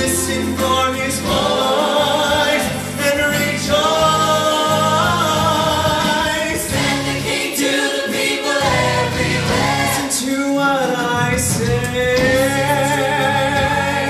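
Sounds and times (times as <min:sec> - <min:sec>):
gospel group singing in harmony: 0:00.0 - 0:14.0
instrumental accompaniment: 0:00.0 - 0:14.0.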